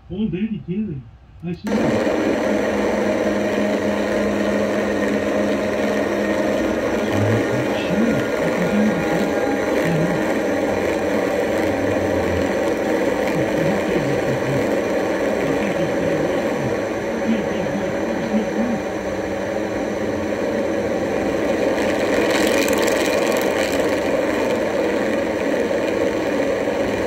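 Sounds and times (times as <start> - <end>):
low hum: 0.0 - 27.0
noisy synthesizer drone: 0.0 - 27.0.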